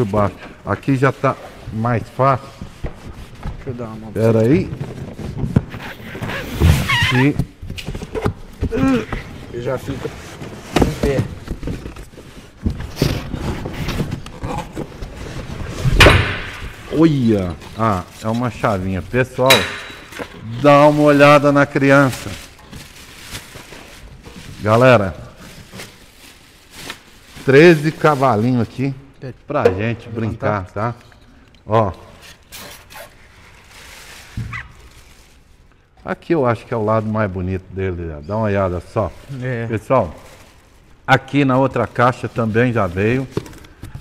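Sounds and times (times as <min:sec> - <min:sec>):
cardboard and styrofoam handling: 0:00.0 - 0:28.8, 0:32.3 - 0:35.7
scraping and rustling: 0:00.0 - 0:28.8, 0:32.1 - 0:35.7.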